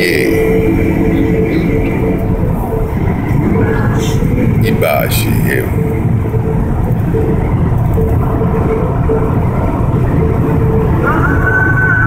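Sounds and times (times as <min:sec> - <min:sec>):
car engine and road noise: 0:00.0 - 0:12.0
held musical tone: 0:00.0 - 0:12.0.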